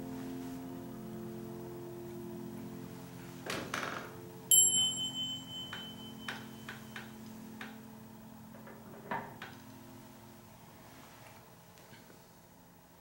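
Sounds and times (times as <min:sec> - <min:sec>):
sharp bell-like clink: 0:04.5 - 0:06.7.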